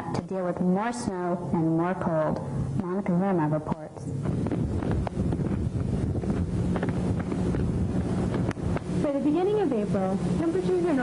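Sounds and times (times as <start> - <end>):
faint steady hum: 0.0 - 11.0
wind buffeting microphone: 3.7 - 11.0.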